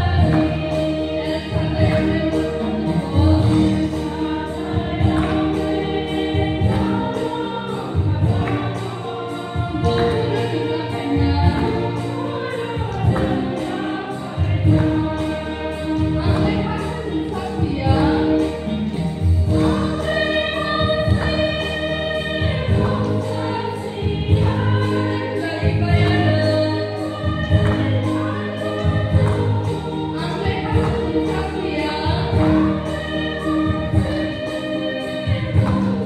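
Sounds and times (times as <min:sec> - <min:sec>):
women's choir singing a hymn: 0:00.0 - 0:36.0.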